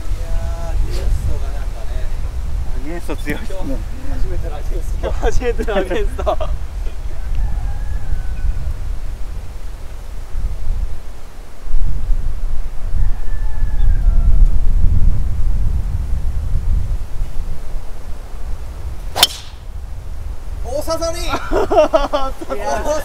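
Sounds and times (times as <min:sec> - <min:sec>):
wind buffeting microphone: 0:00.0 - 0:23.0
golf driver striking ball: 0:19.1 - 0:19.7.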